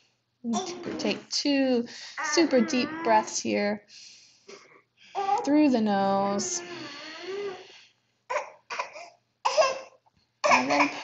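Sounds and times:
baby babbling: 2.2s - 3.4s, 5.2s - 5.5s, 6.3s - 7.7s, 8.3s - 11.0s.

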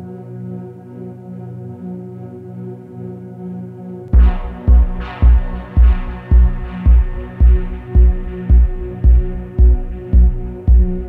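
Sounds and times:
droning synth chord: 0.0s - 11.0s
deep kick drum thumping: 4.2s - 11.0s.

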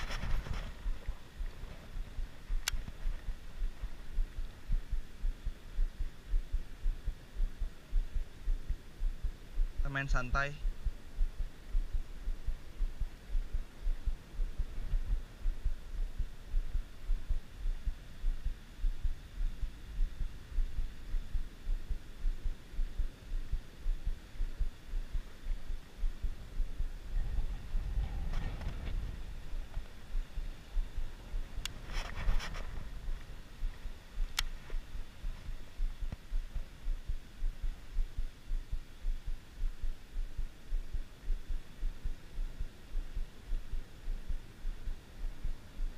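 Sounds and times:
sharp clicks: 2.6s - 3.0s, 34.3s - 34.6s.

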